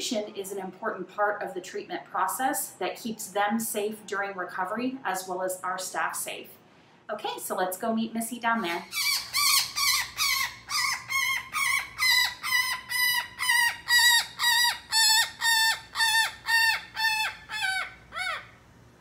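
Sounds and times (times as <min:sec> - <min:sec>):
woodpecker calling: 0:08.8 - 0:18.6.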